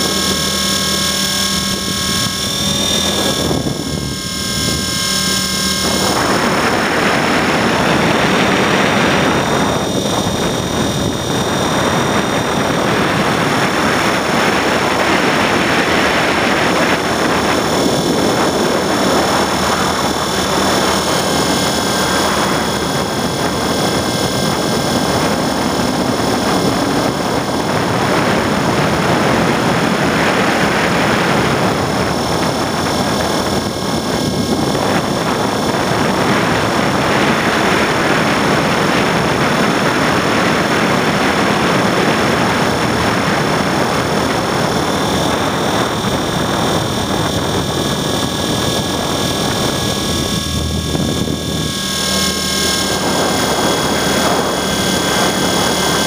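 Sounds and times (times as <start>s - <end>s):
rc helicopter motor whine: 0.0s - 56.0s
rotor blades rushing: 0.0s - 56.0s
wind: 0.0s - 56.0s.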